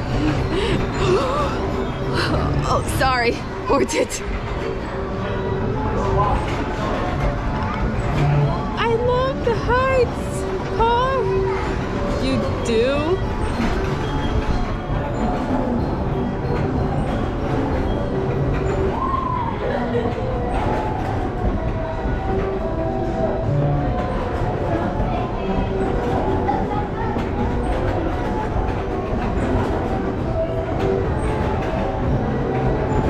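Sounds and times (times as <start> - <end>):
carousel machinery rumbling: 0.0 - 33.0.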